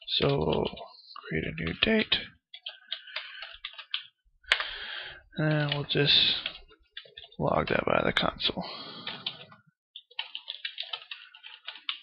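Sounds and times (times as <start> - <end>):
computer keyboard typing: 0.1 - 0.8, 1.4 - 4.7, 5.4 - 7.4, 9.0 - 12.0.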